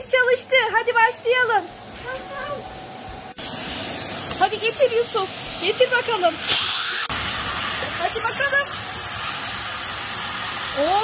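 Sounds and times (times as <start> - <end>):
vacuum cleaner running: 0.0 - 11.0.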